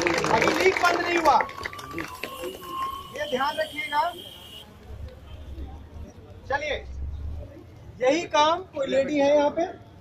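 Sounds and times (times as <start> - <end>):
people talking: 0.0 - 9.8.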